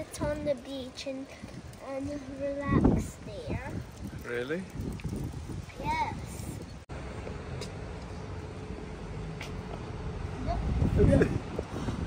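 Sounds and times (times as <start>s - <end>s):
vehicle engine rumbling: 3.2s - 12.0s.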